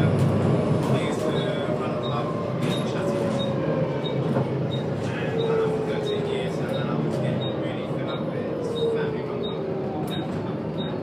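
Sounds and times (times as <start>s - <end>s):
bus engine and road drone: 0.0s - 11.0s.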